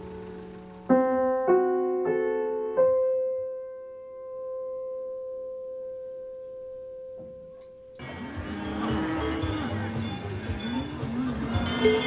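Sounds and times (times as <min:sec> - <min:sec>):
held piano note: 0:00.1 - 0:12.0
busy background: 0:08.0 - 0:12.0
cattle mooing: 0:08.1 - 0:10.4.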